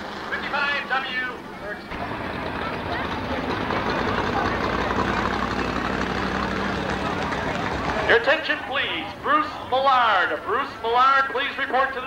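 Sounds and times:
race car engines rumbling: 0.0 - 12.0
announcer speaking over loudspeaker: 7.0 - 12.0.

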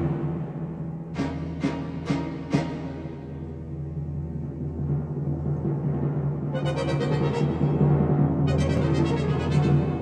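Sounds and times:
timpani strokes: 0.0 - 10.0.

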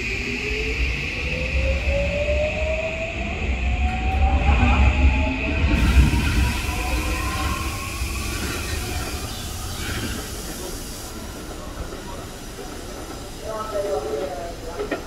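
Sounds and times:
wheels rumbling on rail: 0.0 - 15.0.

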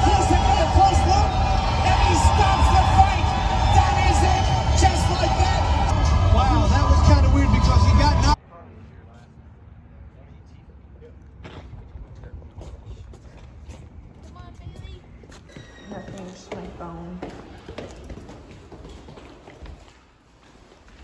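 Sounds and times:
footsteps on stairs and tiles: 11.4 - 21.0.

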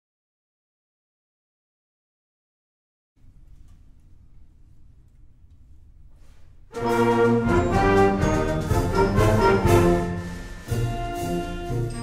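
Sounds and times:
faint room noise: 3.2 - 6.9
symphonic band playing a march: 6.7 - 12.0.

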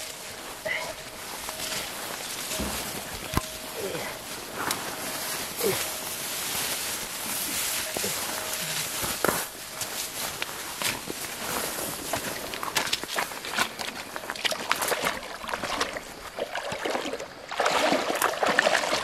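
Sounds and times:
footsteps on stones: 0.0 - 15.2
leaves rustling: 0.0 - 16.4.

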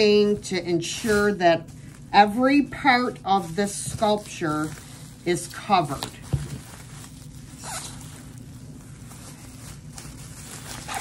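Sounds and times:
bubble wrap rustling: 0.0 - 11.0
steady low hum: 0.0 - 11.0.

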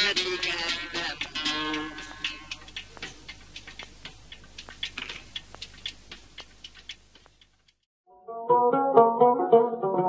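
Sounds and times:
faint irregular clicks: 0.7 - 7.8.

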